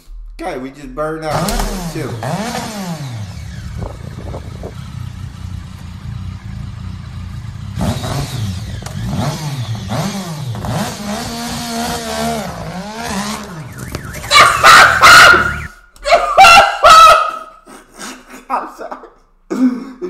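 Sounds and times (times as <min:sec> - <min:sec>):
motorcycle engine revving: 0:01.2 - 0:15.8.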